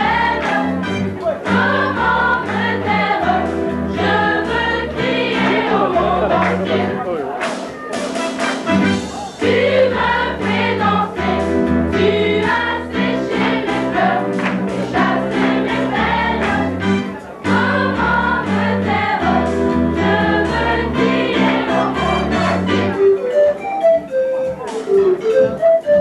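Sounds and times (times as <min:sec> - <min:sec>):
choir singing gospel song: 0:00.0 - 0:07.0, 0:09.4 - 0:23.0.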